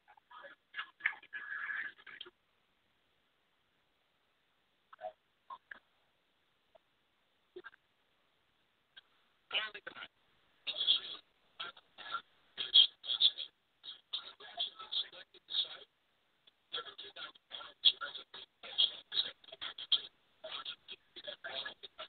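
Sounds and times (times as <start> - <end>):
recorded speech playing back: 0.0 - 2.4, 7.5 - 7.8, 8.9 - 22.0.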